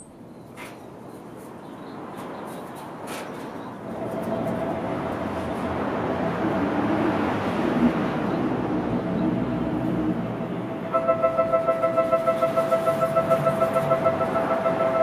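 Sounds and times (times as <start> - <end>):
train arriving at platform: 1.8 - 15.0
electronic warning chime: 10.9 - 15.0.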